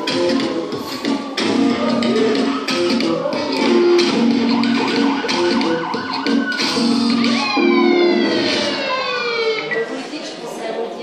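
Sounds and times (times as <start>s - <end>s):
music soundtrack: 0.0s - 9.7s
police siren wailing: 0.7s - 10.0s.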